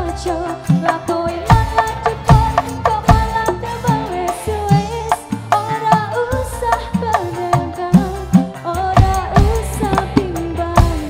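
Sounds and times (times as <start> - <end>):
live band music: 0.0 - 11.0
woman singing: 0.0 - 11.0
gliding low drum notes: 9.0 - 11.0.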